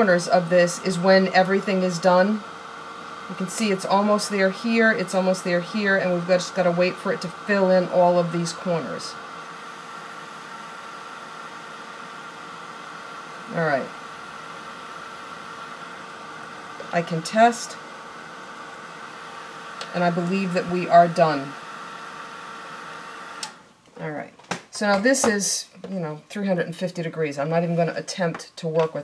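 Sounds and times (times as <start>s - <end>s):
heat tool blower hiss: 0.0s - 23.6s
motor whine: 0.0s - 23.8s.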